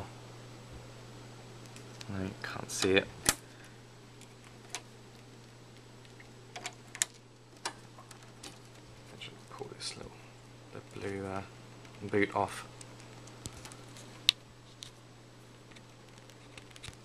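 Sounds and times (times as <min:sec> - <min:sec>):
steady low hum: 0:00.0 - 0:17.0
plastic clicks of network cables: 0:11.8 - 0:15.0, 0:15.7 - 0:17.0.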